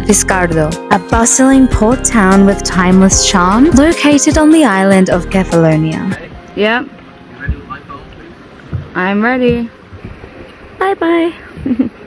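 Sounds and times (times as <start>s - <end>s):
wind buffeting microphone: 2.7s - 12.0s
low thumps: 7.4s - 10.6s.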